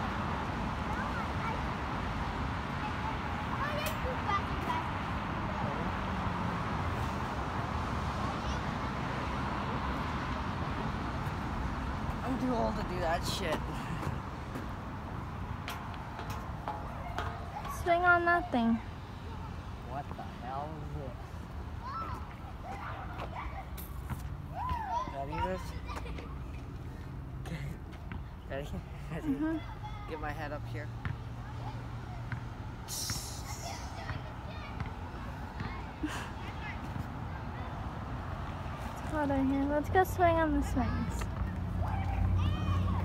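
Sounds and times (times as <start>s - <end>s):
distant voices: 0.0s - 43.0s
brief hiss: 32.9s - 34.0s.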